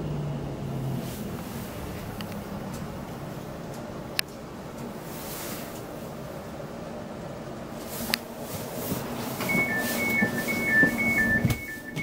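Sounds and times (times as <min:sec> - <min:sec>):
two-tone door warning beep: 0:09.4 - 0:12.0.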